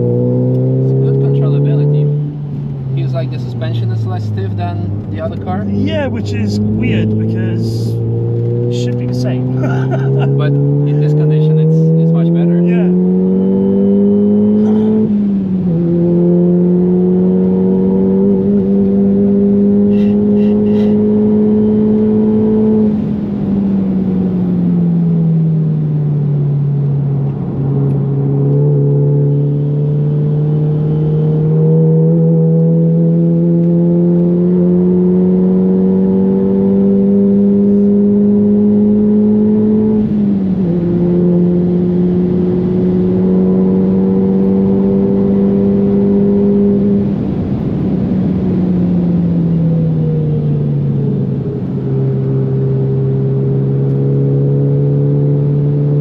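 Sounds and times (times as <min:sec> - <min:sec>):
engine revving through upshifts: 0:00.0 - 0:23.5, 0:26.2 - 0:56.0
turbocharged car engine accelerating: 0:00.0 - 0:56.0.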